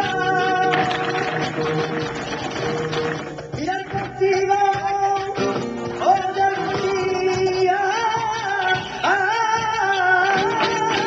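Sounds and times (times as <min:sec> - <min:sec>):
dance shoes stamping on stage: 0:00.0 - 0:11.0.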